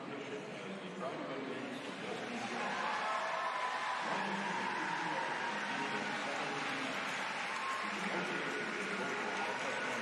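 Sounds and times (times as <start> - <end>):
faint indistinct voices: 0.0 - 10.0
show hall background noise: 0.0 - 10.0.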